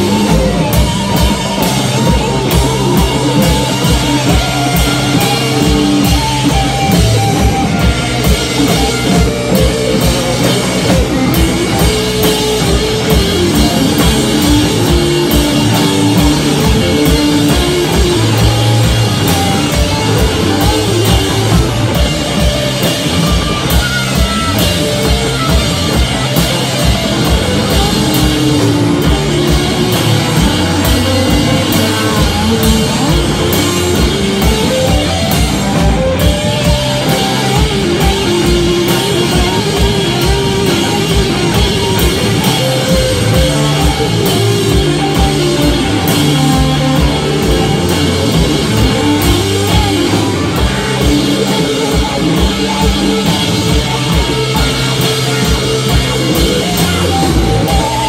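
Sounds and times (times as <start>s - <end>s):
drum kit beating fast: 0.0s - 58.0s
electric guitars: 0.0s - 58.0s.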